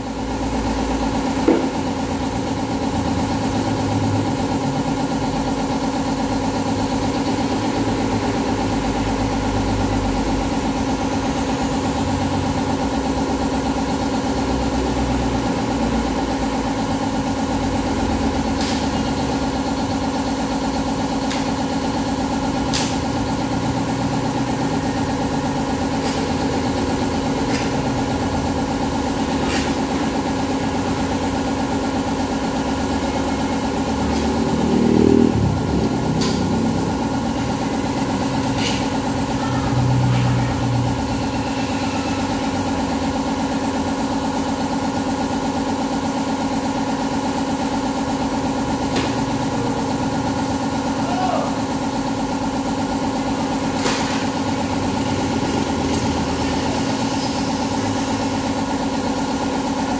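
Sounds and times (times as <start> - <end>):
motorcycle engine idling: 0.0 - 59.9.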